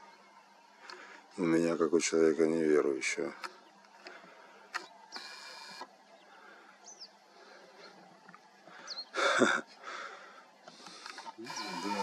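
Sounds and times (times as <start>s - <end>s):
camera lens motor whir: 4.7s - 5.9s, 10.8s - 12.0s.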